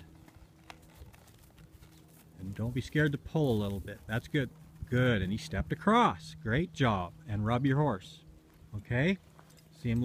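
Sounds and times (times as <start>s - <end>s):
horse hoof steps on dirt: 0.0s - 5.5s, 8.4s - 10.0s.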